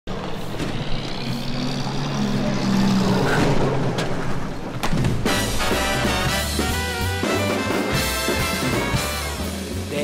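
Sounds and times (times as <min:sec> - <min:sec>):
vehicle engine humming: 0:00.1 - 0:09.8.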